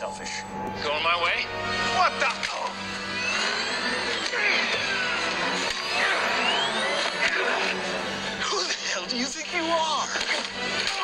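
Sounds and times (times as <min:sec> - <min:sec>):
whining hovercraft engines: 0:00.4 - 0:11.0.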